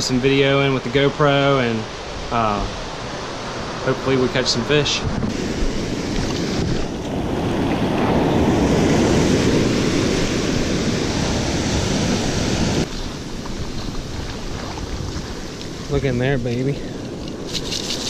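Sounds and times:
ocean surf washing up beach: 0.0s - 18.0s
wind buffeting microphone: 1.8s - 18.0s.

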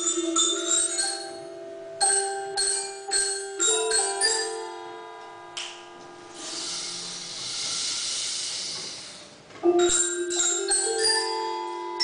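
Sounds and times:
mallet instruments ringing: 0.0s - 6.4s, 9.6s - 12.0s
steady hiss: 6.4s - 9.5s.

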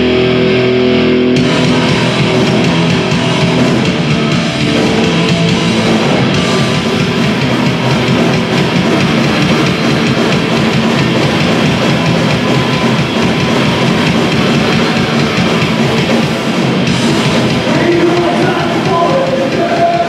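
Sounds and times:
distorted electric guitars: 0.0s - 20.0s
drum kit: 0.0s - 20.0s.

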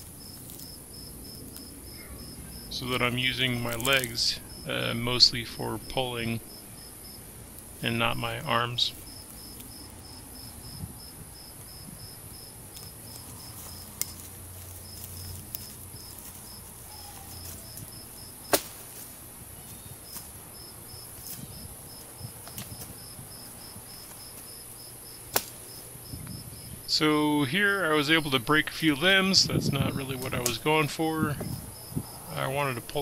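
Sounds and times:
cricket chirping: 0.0s - 33.0s
steady high hiss: 0.0s - 33.0s
sharp snaps: 18.5s - 18.9s, 25.3s - 25.8s.

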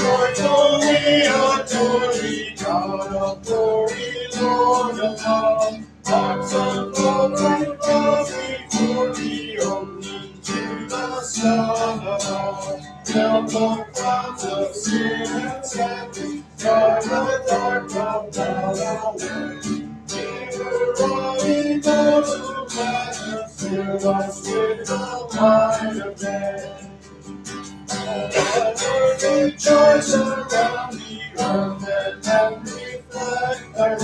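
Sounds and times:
acoustic guitar strumming: 0.0s - 34.0s.

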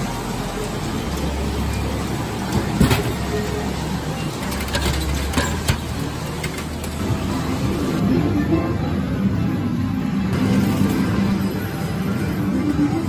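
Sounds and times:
vending machine hum: 0.0s - 13.0s.

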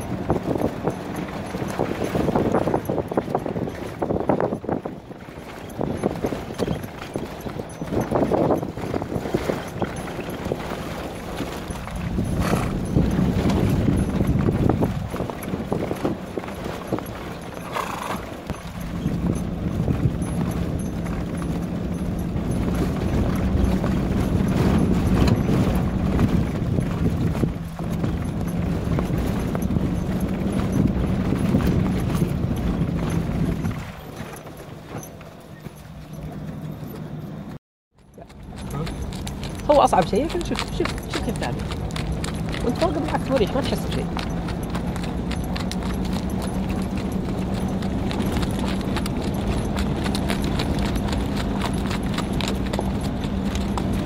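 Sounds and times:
horse hoofbeats on sand: 0.0s - 54.0s.

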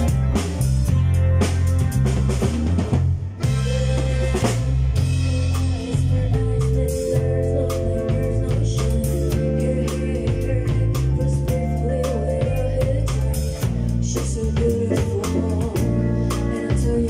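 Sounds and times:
electric bass line: 0.0s - 17.0s
live band playing: 0.0s - 17.0s.

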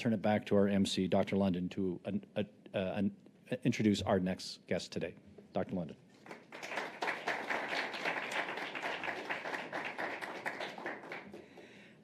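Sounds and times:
audience applauding: 6.2s - 11.8s.

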